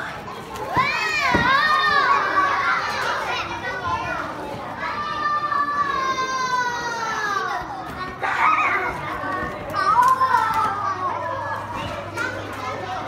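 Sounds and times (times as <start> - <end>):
young children shouting and squealing: 0.6 - 4.2, 4.8 - 9.1.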